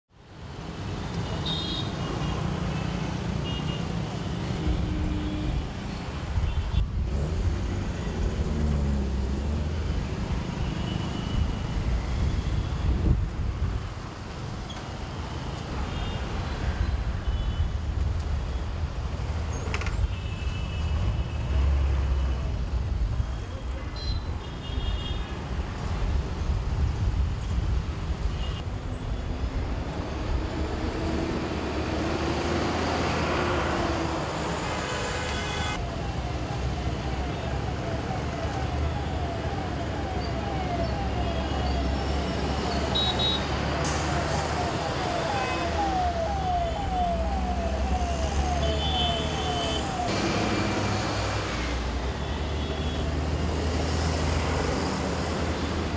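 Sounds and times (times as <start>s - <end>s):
traffic engines rumbling: 0.2s - 55.9s.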